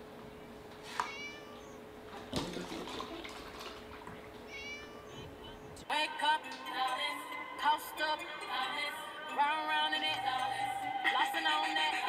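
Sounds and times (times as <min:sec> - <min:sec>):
faint steady hum: 0:00.0 - 0:12.0
kitten mewing: 0:00.9 - 0:01.8, 0:04.4 - 0:05.8.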